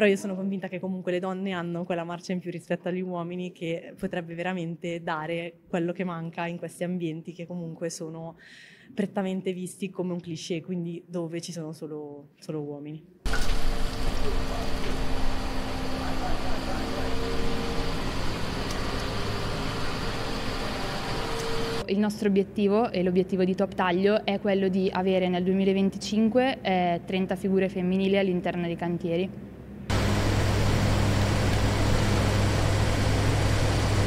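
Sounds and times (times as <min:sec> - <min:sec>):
excavator diesel engine running: 0:13.3 - 0:21.8, 0:29.9 - 0:34.0.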